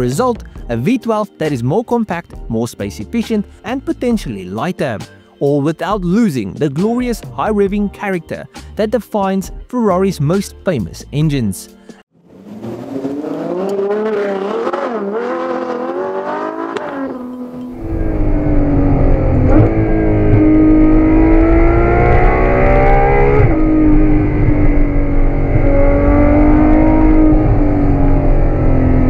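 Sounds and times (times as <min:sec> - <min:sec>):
car engine revving: 0:12.2 - 0:29.0.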